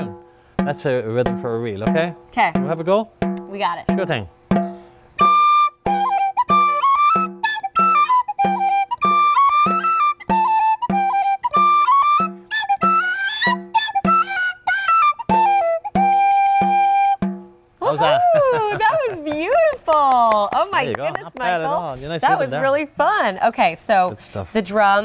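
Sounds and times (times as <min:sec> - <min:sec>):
frame drum steady beat: 0:00.0 - 0:05.2, 0:18.4 - 0:22.5
tin whistle playing reel: 0:05.2 - 0:17.2.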